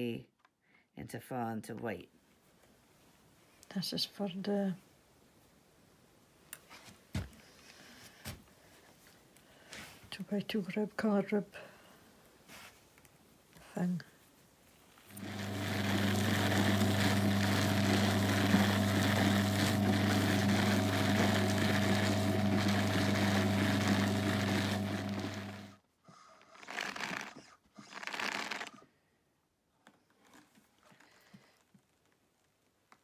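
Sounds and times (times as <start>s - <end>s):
drum carder motor humming: 15.1s - 25.8s.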